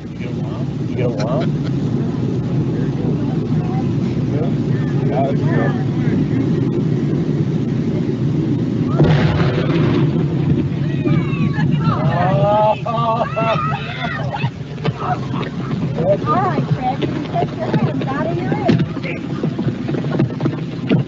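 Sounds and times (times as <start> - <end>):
dynamite explosion: 0.0 - 21.0
windy rumble: 0.0 - 21.0
faint voices of onlookers: 10.6 - 19.9.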